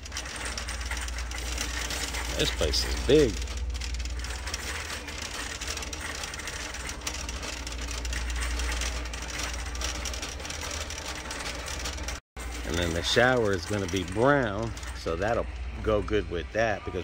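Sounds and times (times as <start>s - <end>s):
shopping cart rolling on concrete: 0.0s - 16.4s.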